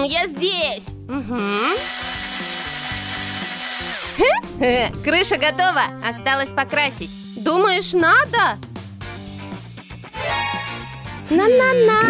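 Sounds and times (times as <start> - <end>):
background music: 0.0 - 12.0
cordless drill driving screws: 1.8 - 4.3.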